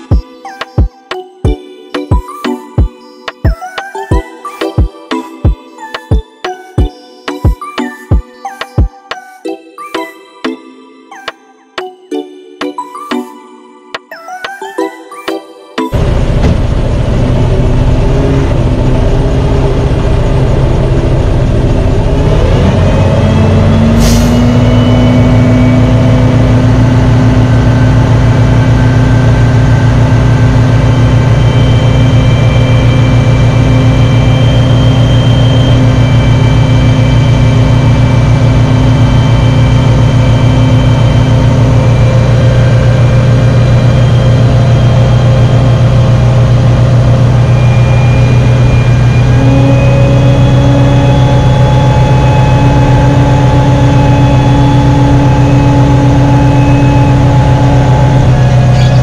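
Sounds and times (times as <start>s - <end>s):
diesel truck engine revving: 15.9s - 59.0s.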